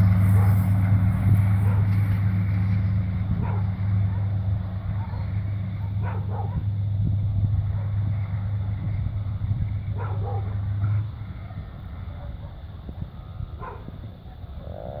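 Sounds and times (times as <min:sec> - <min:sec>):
diesel locomotive engine drone: 0:00.0 - 0:15.0
dog barking: 0:01.6 - 0:02.0, 0:03.4 - 0:06.7, 0:09.9 - 0:11.0, 0:12.1 - 0:12.7, 0:13.6 - 0:14.0.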